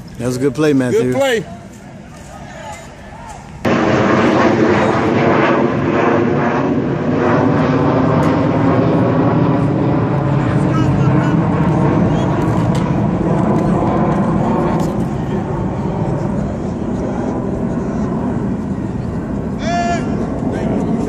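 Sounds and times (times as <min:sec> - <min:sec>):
wind rumble on microphone: 0:01.6 - 0:21.0
faint voices: 0:10.2 - 0:21.0.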